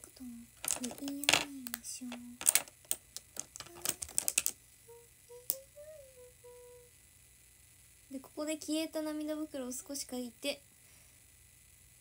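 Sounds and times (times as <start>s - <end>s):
woman softly humming: 4.9s - 7.0s.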